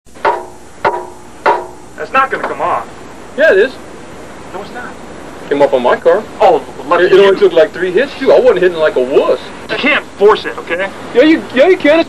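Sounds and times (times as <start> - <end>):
hammer clanking on metal: 0.1 - 2.6.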